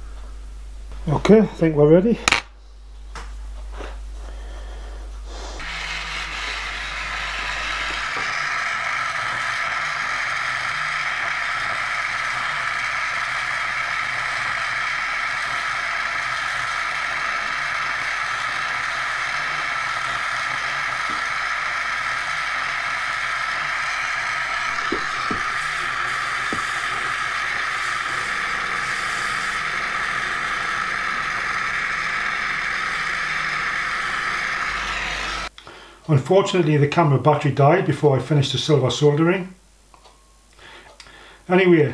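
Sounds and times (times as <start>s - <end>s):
torch flame hissing: 5.2s - 35.5s.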